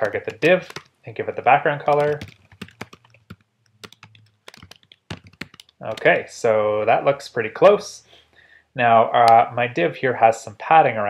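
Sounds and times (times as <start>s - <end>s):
computer keyboard key clicks: 0.0s - 0.9s, 1.9s - 6.2s.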